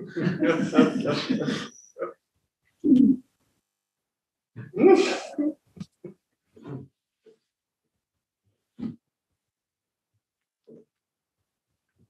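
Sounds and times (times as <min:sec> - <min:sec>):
person laughing: 0:00.0 - 0:01.7
person making wordless vocal sounds: 0:04.6 - 0:05.9.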